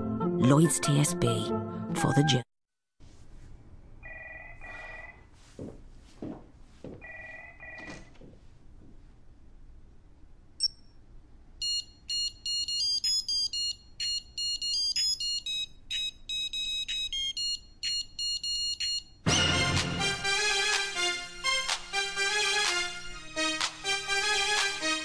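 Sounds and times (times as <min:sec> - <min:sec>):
digital watch beep: 0:11.6 - 0:19.1.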